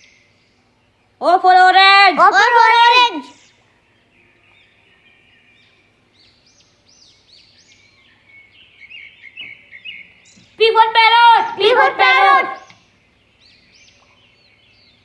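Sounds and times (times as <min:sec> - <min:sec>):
birds chirping: 0:00.0 - 0:15.0.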